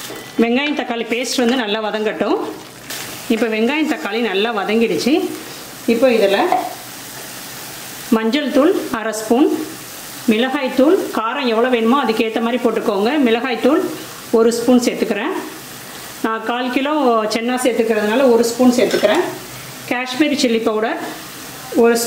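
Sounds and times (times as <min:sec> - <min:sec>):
paste sizzling in a pan: 0:00.0 - 0:22.0
person talking: 0:16.3 - 0:19.4.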